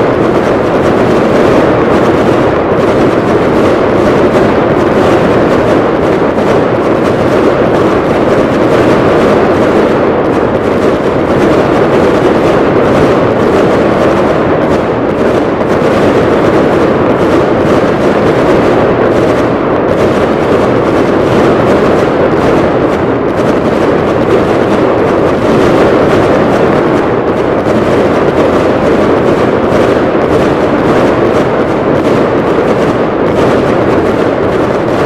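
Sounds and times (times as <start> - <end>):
fireworks barrage rumble: 0.0 - 35.0.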